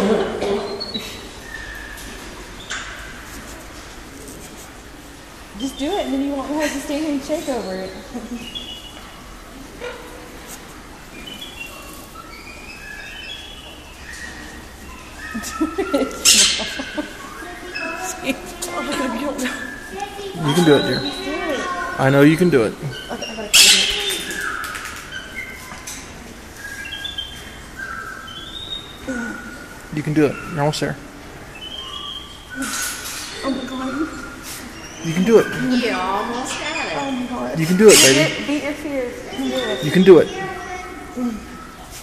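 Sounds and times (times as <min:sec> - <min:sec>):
small birds chirping: 0:00.0 - 0:42.0.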